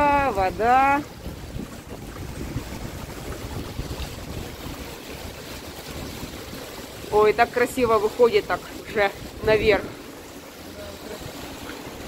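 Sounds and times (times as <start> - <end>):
wind rumble on microphone: 0.0 - 10.3
fountain water splashing: 0.0 - 12.0.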